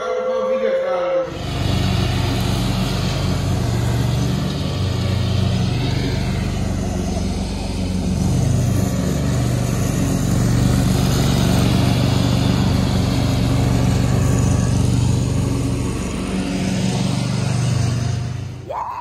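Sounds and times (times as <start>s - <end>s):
riding lawn mower engine: 0.0s - 18.8s.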